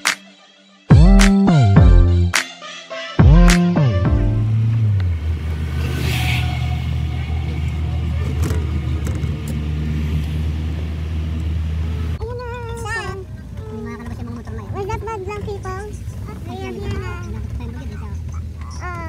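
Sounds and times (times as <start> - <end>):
car interior engine drone: 4.0 - 19.0
voices talking: 11.9 - 19.0.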